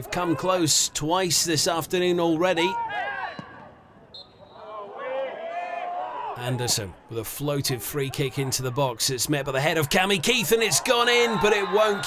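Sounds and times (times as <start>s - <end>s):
players shouting: 2.3s - 3.8s, 4.4s - 7.0s, 7.6s - 12.0s.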